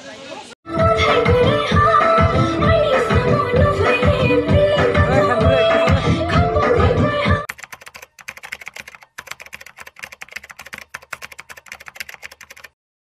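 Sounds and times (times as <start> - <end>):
dance music: 0.7 - 7.5
keyboard typing clicks: 7.5 - 12.8.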